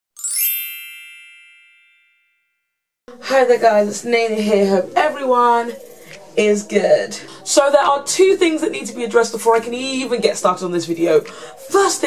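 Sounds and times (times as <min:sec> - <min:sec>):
shimmering chime effect: 0:00.2 - 0:02.6.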